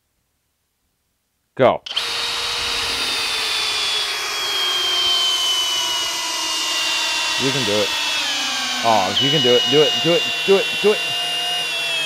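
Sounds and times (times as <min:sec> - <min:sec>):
drill driving screw into log: 0:01.9 - 0:12.0.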